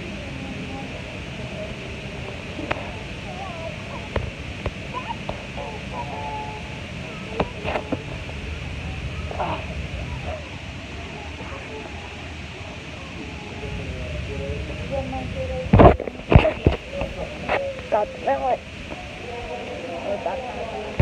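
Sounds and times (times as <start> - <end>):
crowded waiting area hum: 0.0 - 21.0
faint background voices: 0.0 - 21.0.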